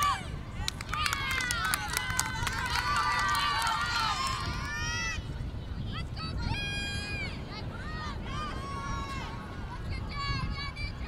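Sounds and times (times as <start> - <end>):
women cheering and shouting: 0.0 - 5.3, 6.0 - 11.0.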